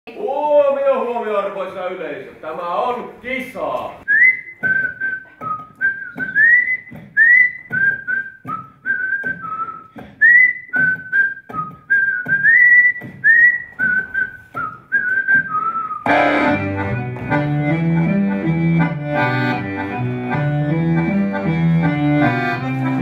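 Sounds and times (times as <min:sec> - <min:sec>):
person whistling a tune: 0:04.1 - 0:16.1.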